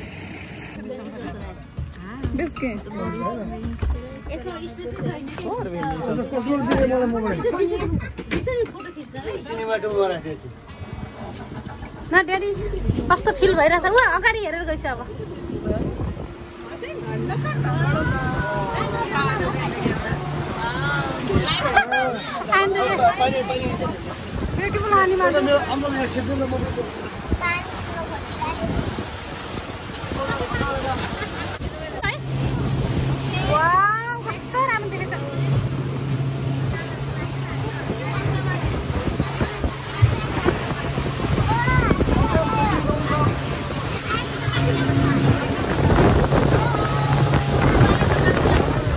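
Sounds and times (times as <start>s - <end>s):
motorboat engine rumble: 0.0s - 48.9s
wind and water rushing: 0.0s - 48.9s.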